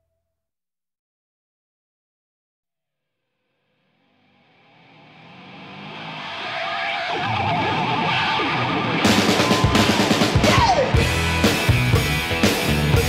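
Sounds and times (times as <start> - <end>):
electric guitar: 4.2 - 13.0
hard rock band with drums: 6.0 - 13.0.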